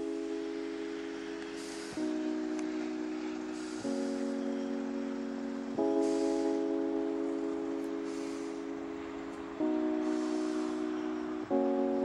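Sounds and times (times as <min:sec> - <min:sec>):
slow music of held chords: 0:00.0 - 0:12.0.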